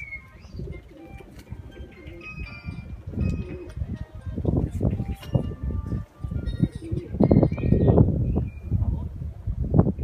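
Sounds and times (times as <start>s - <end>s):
birds calling: 0.0s - 9.0s.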